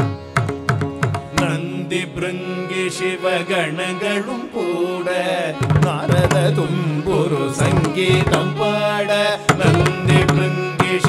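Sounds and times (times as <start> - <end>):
violin: 0.0 - 11.0
two men singing: 1.3 - 11.0.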